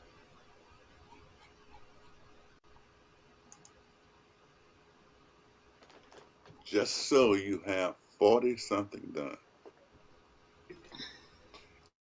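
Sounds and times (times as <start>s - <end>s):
faint steady hiss: 0.0s - 11.9s.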